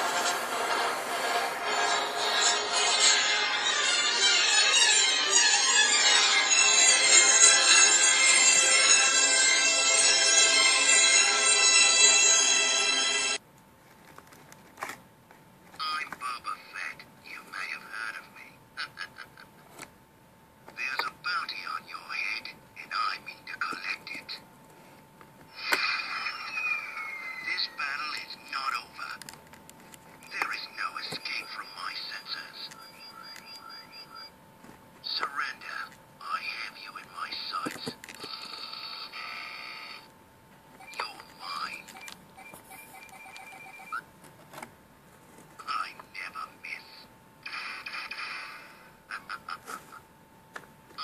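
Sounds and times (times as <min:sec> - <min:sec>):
faint electronic whine: 0:25.4 - 0:29.2, 0:30.0 - 0:44.1.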